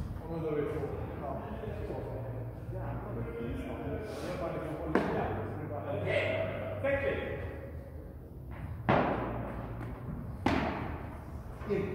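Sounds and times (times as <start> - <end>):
voices in echoing hall: 0.0 - 11.9
padel ball hit: 8.8 - 11.1.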